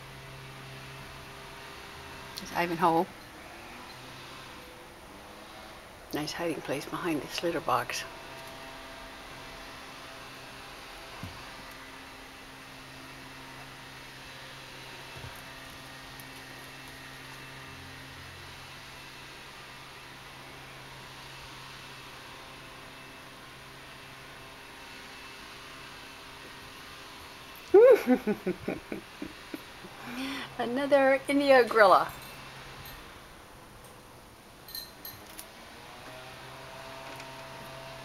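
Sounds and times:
room tone hum and hiss: 0:00.0 - 0:38.0.

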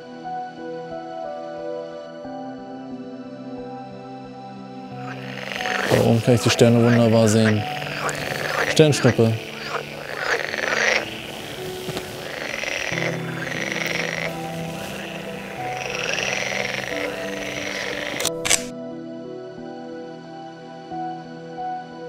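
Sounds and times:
soft music with held notes: 0:00.0 - 0:22.0
frogs calling: 0:04.9 - 0:18.4
sharp clicks: 0:17.6 - 0:18.7.

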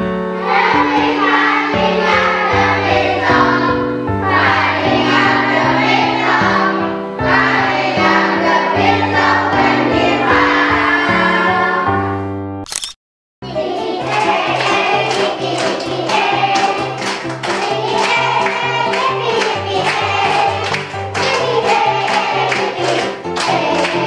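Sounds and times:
children singing: 0:00.4 - 0:12.0, 0:13.5 - 0:24.0.

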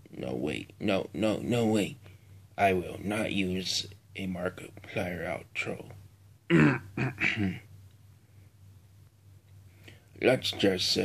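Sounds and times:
person coughing: 0:06.5 - 0:07.7.

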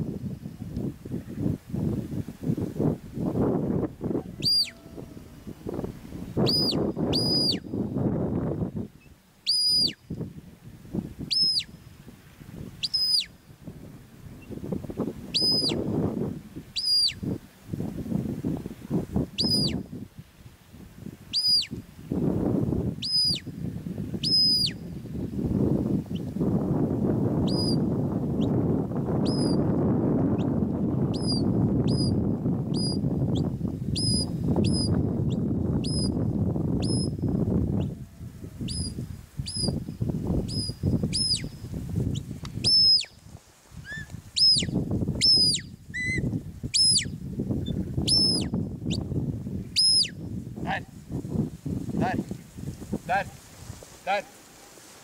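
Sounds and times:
small bird chirping: 0:09.5 - 0:10.0, 0:11.3 - 0:11.7, 0:12.8 - 0:13.3, 0:21.3 - 0:21.8, 0:40.5 - 0:43.1, 0:43.9 - 0:46.2, 0:46.8 - 0:49.0, 0:49.8 - 0:50.1.

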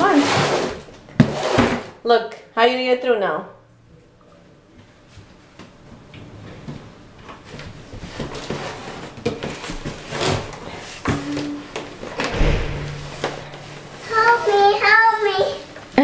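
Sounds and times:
cardboard box scraping on wood floor: 0:00.0 - 0:01.9, 0:08.0 - 0:11.4
child's voice: 0:11.2 - 0:11.7, 0:14.0 - 0:15.8
heavy thump: 0:12.2 - 0:14.3.

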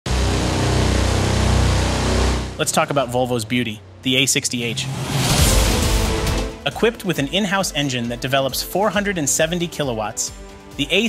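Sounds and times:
heavy diesel truck engine rumbling: 0:00.1 - 0:06.6.

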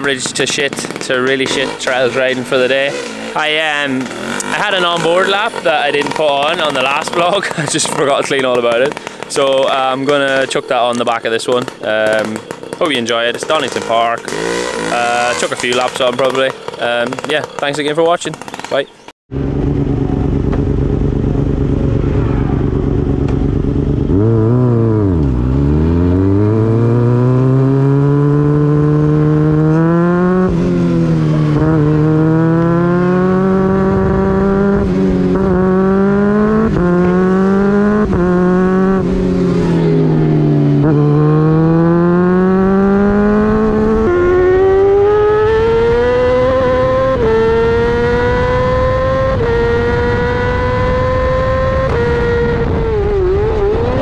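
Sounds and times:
racing motorcycle engine revving: 0:00.0 - 0:54.0
wind rush on microphone: 0:19.8 - 0:24.9, 0:42.8 - 0:54.0.

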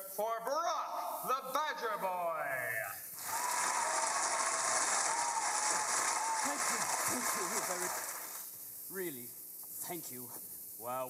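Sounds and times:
audience applause: 0:03.2 - 0:08.5.

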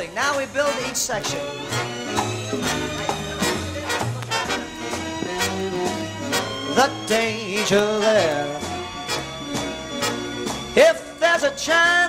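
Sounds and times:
swing band playing: 0:00.0 - 0:12.0
brass sections playing: 0:00.3 - 0:12.0.

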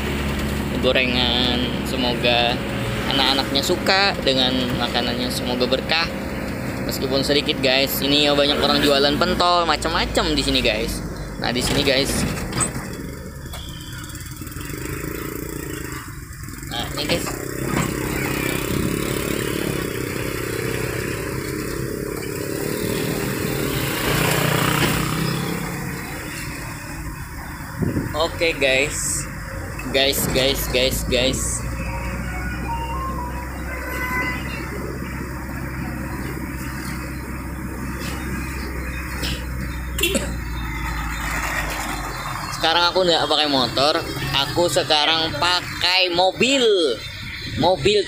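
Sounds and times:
street traffic: 0:00.0 - 0:48.0
truck engine and road noise: 0:00.0 - 0:48.0.

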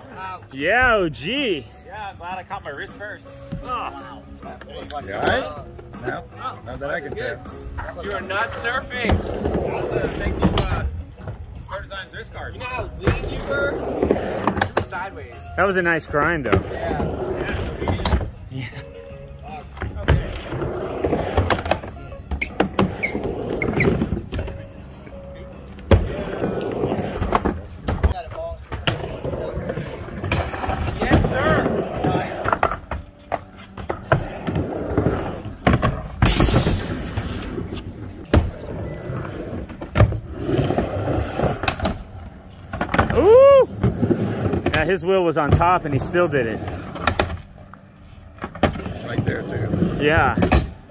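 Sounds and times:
skateboard wheels rumbling on ramp: 0:25.9 - 0:32.9, 0:34.0 - 0:47.1.

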